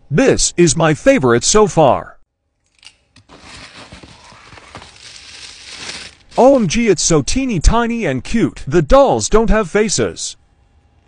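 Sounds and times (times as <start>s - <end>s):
tissue paper rustling: 3.2s - 6.8s.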